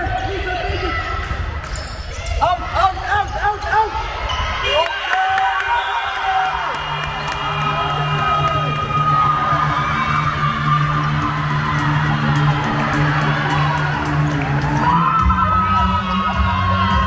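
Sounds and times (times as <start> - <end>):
people shouting and cheering: 0.0 - 17.0
music over speakers: 6.9 - 17.0.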